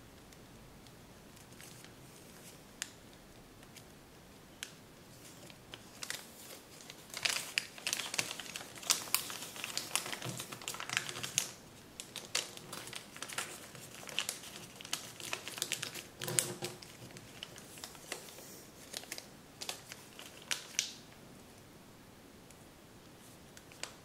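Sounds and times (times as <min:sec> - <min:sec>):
paper crinkling and crackling: 0:01.3 - 0:03.9, 0:04.6 - 0:21.1, 0:23.2 - 0:24.0.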